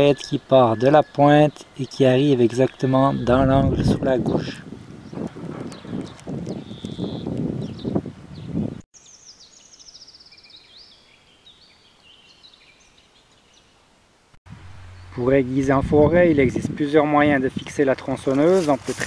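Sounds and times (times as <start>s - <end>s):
songbirds singing: 0.0s - 13.8s, 14.8s - 16.9s.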